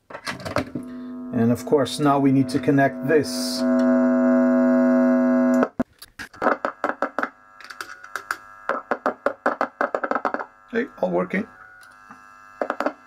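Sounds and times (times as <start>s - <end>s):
guitar amp buzzing tone: 0.4s - 5.8s, 6.4s - 13.0s.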